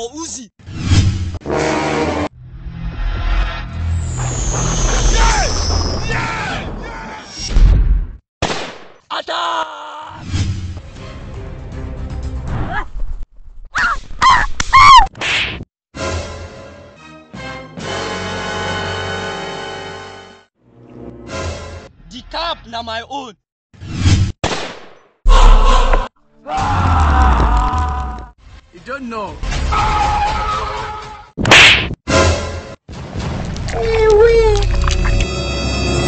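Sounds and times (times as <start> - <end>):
whip-like swish: 31.4 - 32.0.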